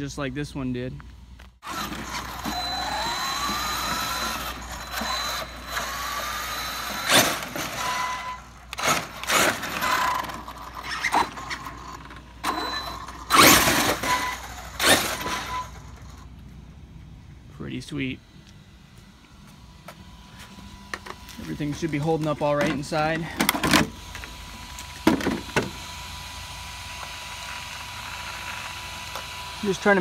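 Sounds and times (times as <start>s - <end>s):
tire noise on concrete: 0.0s - 30.0s
electric motor whining: 1.6s - 16.3s, 18.4s - 30.0s.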